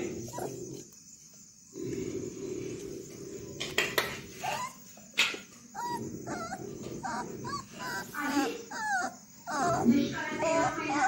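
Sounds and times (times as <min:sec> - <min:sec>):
puppy whimpering: 0:00.0 - 0:00.9, 0:04.3 - 0:05.1, 0:05.7 - 0:11.0.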